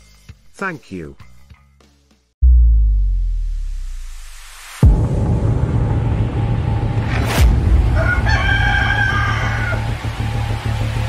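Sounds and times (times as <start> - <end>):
electronic background music: 3.0 - 11.0
rooster crowing: 7.9 - 10.1.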